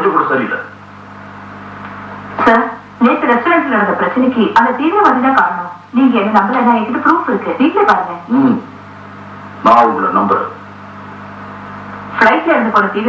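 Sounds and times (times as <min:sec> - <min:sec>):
man speaking: 0:00.0 - 0:00.8, 0:09.6 - 0:10.6
steady low hum: 0:00.0 - 0:13.0.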